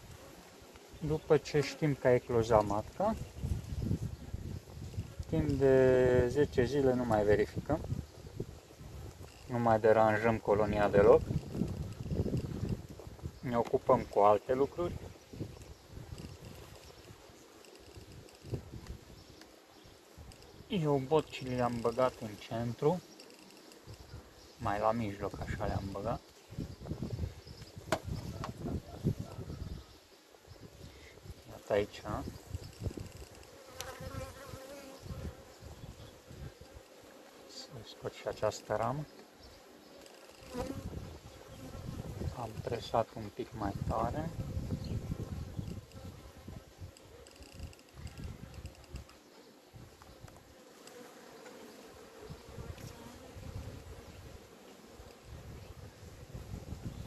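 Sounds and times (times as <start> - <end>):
honeybees buzzing: 0.0 - 57.0
hive tool prying wooden frames: 27.9 - 28.6.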